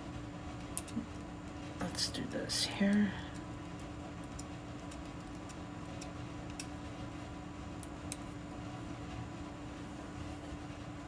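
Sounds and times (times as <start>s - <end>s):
steady hum: 0.0s - 11.0s.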